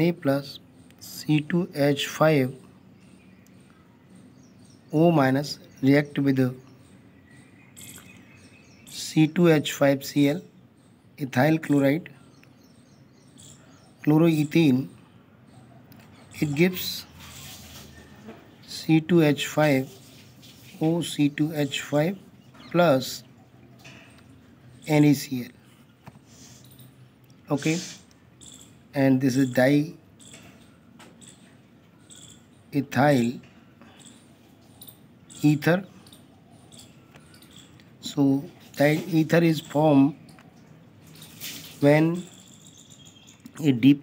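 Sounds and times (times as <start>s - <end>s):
faint background noise: 0.0s - 44.0s
faint high-pitched chirping: 0.0s - 44.0s.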